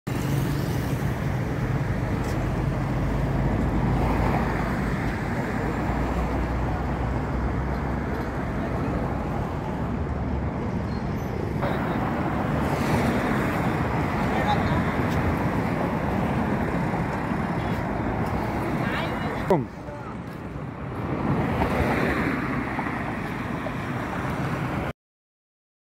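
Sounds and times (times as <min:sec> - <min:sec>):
road traffic rumble: 0:00.1 - 0:24.9.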